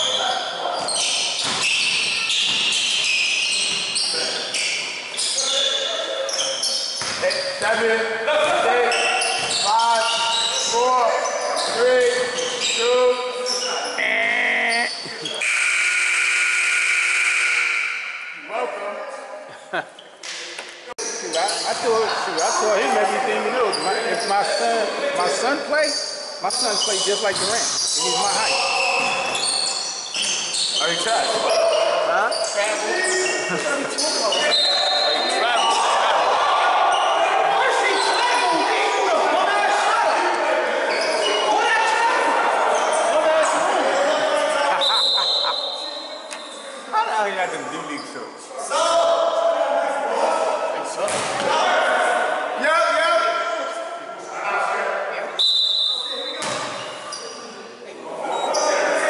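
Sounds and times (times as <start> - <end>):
players' voices echoing: 0.0 - 59.0.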